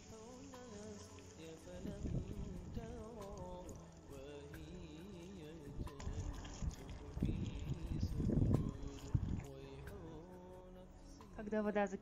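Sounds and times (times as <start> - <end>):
water pouring into a pot: 0.0 - 10.6
soft background music: 0.0 - 12.0.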